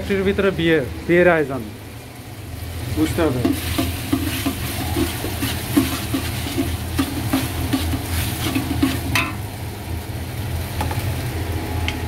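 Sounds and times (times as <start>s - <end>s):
gas stove burner roaring: 0.0s - 12.0s
onions frying: 0.0s - 12.0s
spatula stroking a pot: 3.6s - 9.4s.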